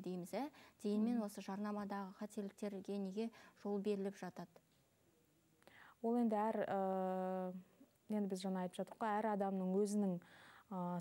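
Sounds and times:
short breath: 5.6s - 6.0s, 10.2s - 10.7s.

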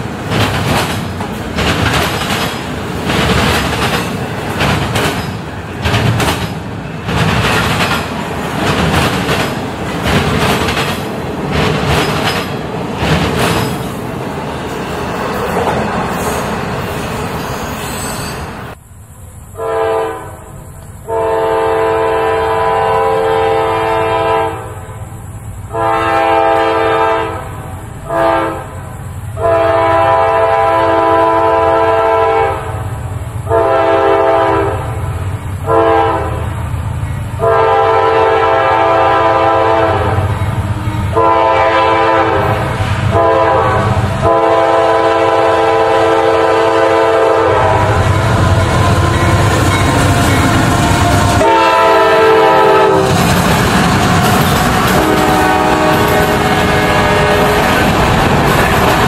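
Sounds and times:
train engine and wheels rumble: 0.0s - 59.0s
locomotive air horn blasts: 19.5s - 25.0s, 25.7s - 32.8s, 33.4s - 36.5s, 37.4s - 53.2s, 53.9s - 58.0s.

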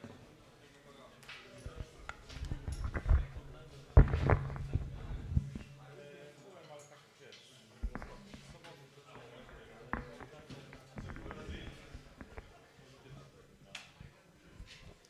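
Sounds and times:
faint talk: 0.0s - 15.0s
microphone handling thumps: 1.6s - 5.8s, 7.8s - 8.6s, 9.4s - 12.6s.

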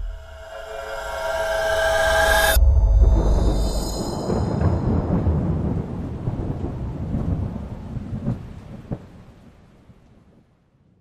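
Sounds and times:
thunder rumble: 0.0s - 10.8s
thunder cracks: 2.6s - 10.4s.

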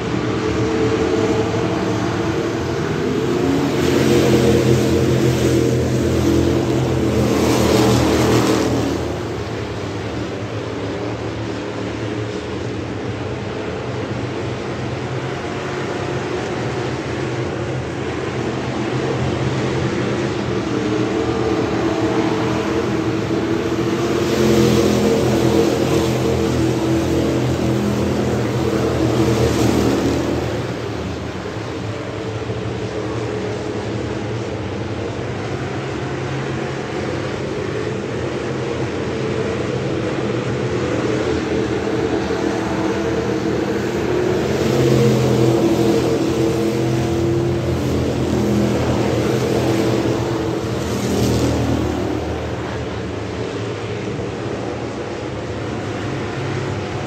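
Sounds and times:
racing car engines running hard: 0.0s - 57.0s.

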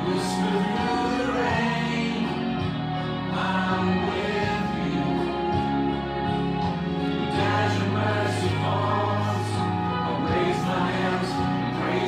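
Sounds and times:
instrumental accompaniment: 0.0s - 12.0s
voices singing worship song: 0.0s - 12.0s.

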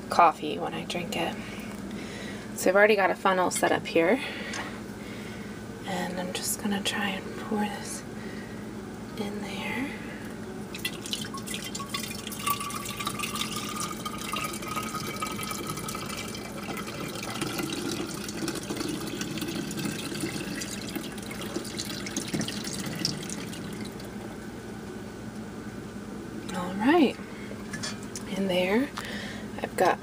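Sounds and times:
liquid pouring into bottle: 10.8s - 24.2s.

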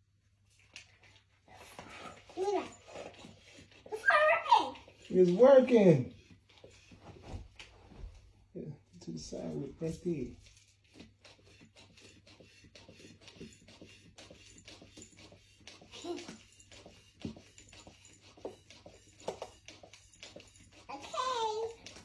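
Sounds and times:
hand pump strokes: 0.7s - 7.2s, 9.2s - 22.0s.

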